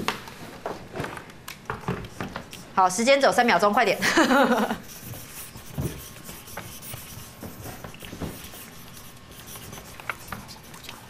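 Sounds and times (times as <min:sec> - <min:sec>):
pens scratching on paper: 0:01.7 - 0:11.0.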